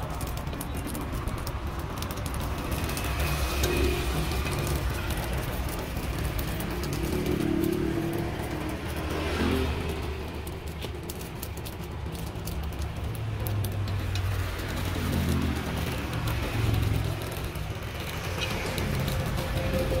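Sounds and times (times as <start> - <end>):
road traffic passing: 0.0 - 20.0.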